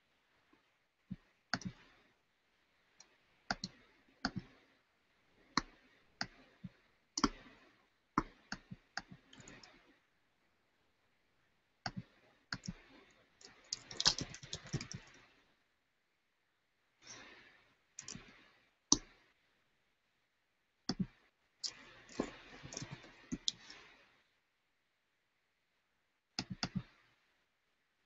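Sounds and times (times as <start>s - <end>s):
computer mouse clicks: 1.5s - 1.8s, 3.0s - 4.6s, 7.2s - 7.5s, 11.8s - 12.8s, 20.9s - 23.8s, 26.4s - 26.9s.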